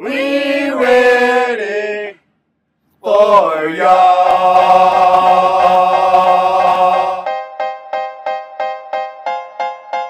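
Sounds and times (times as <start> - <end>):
group of voices chanting: 3.0 - 7.3.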